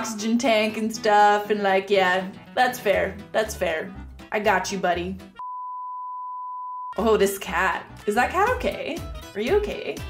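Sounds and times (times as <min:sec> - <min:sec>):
censor bleep: 0:05.4 - 0:07.0.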